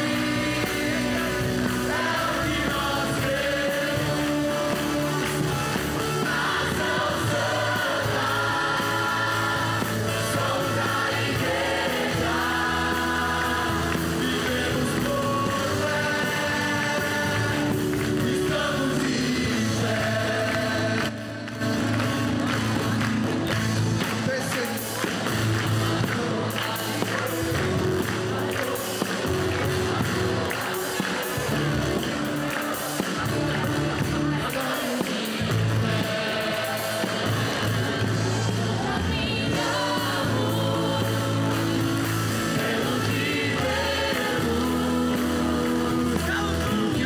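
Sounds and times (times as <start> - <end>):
band playing gospel music: 0.0 - 47.0
congregation and choir singing: 0.0 - 47.0.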